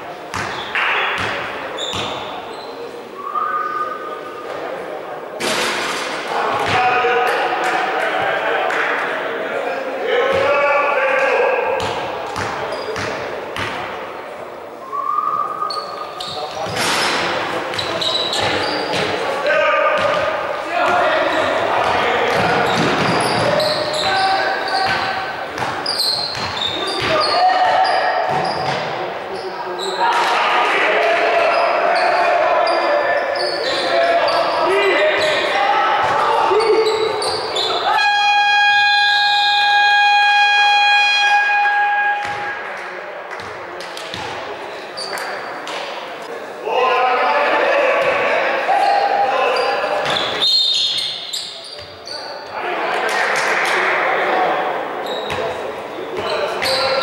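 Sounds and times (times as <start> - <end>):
players shouting: 6.3 - 12.9, 17.1 - 28.8, 29.8 - 42.7, 46.6 - 50.4, 51.0 - 57.0
basketball bouncing: 11.8 - 13.8, 24.8 - 27.2.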